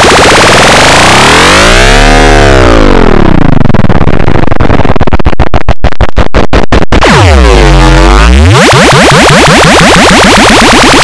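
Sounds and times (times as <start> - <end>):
distorted warping electronic tone: 0.0 - 11.0.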